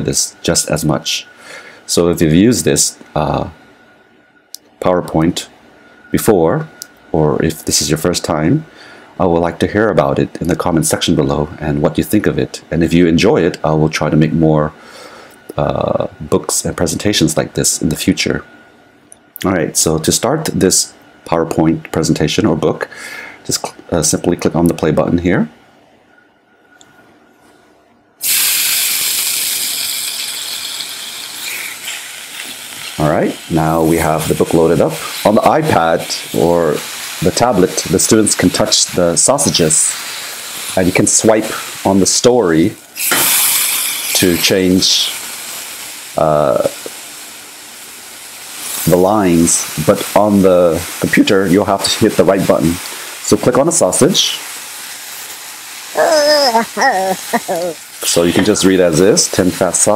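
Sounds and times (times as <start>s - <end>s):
sausages sizzling: 28.2s - 59.9s
high-pitched wordless voice: 56.0s - 57.8s.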